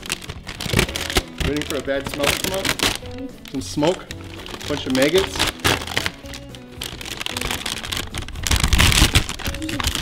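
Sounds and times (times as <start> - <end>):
background music: 0.0 - 10.0
plastic bag crinkling and rustling: 0.0 - 10.0.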